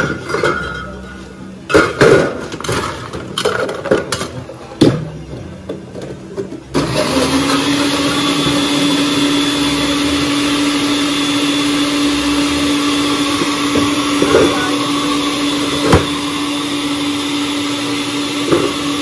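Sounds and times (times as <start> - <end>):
blender motor running: 6.8 - 19.0.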